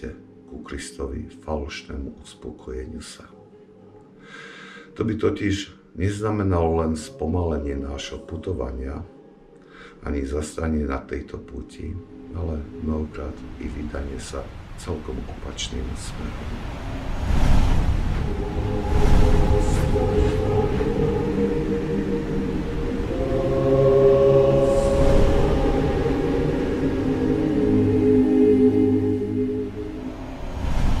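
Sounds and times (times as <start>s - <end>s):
low sustained drone tones: 6.0s - 17.3s, 17.9s - 31.0s.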